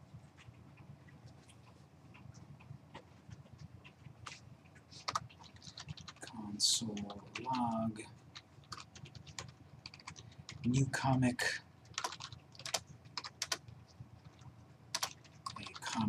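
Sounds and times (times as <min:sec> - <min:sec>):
typing on keyboard: 0:03.6 - 0:10.8, 0:11.8 - 0:16.0.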